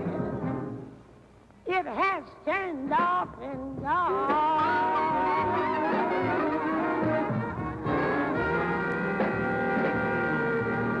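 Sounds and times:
jazz horn section playing blues: 4.0 - 11.0.

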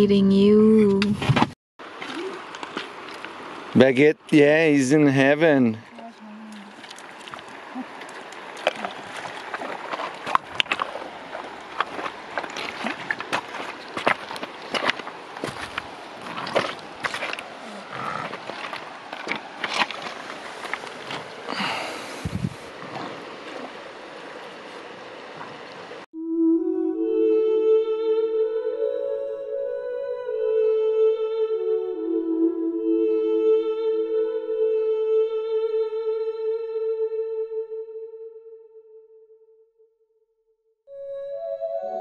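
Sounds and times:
creek water running over stones: 1.8 - 26.0
small sharp splashes: 1.9 - 3.4, 5.9 - 21.4
calm music with held tones: 26.2 - 38.8, 40.9 - 42.0.

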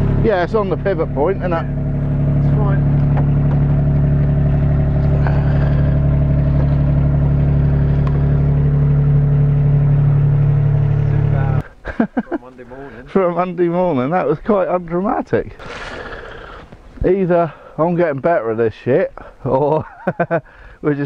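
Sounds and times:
forklift engine idling: 0.0 - 11.7.

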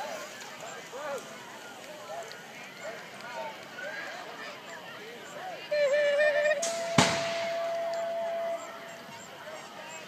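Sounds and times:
wavering call: 5.6 - 9.4
starting gate dropping bang: 6.6 - 8.1.

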